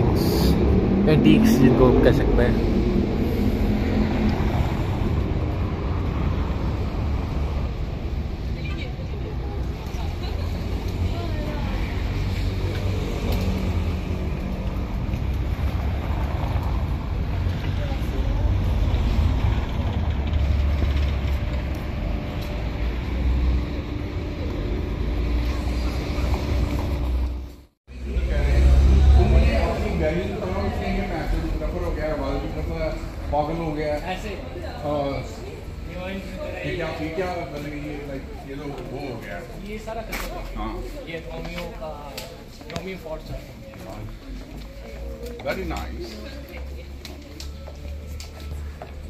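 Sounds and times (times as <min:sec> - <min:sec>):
faint voices of passers-by: 0:00.0 - 0:49.0
traffic rumble: 0:00.0 - 0:49.0.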